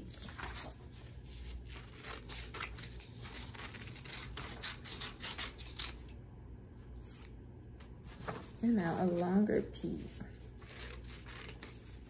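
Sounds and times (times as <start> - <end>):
scissors snipping paper: 1.4 - 6.1, 10.6 - 12.0.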